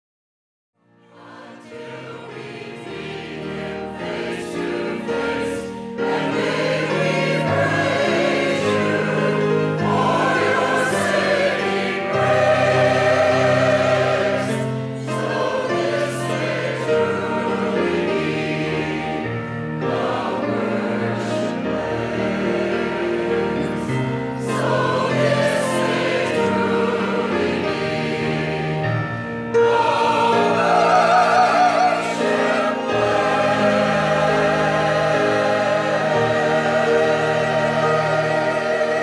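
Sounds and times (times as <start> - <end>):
church choir singing: 0.8 - 39.0.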